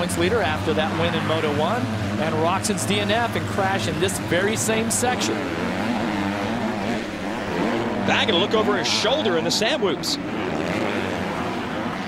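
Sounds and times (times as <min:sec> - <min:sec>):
motocross bike engine revving: 0:00.0 - 0:12.0.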